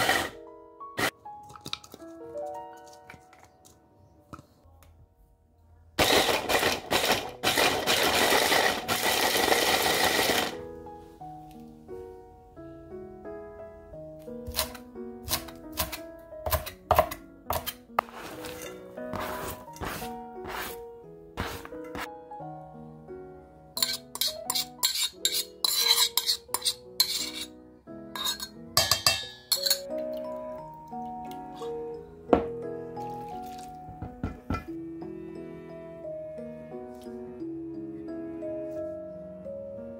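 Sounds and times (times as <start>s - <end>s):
spatula scraping metal bowl: 0.0s - 0.4s, 17.5s - 20.8s, 23.8s - 27.5s, 28.2s - 29.8s
background music: 0.0s - 39.9s.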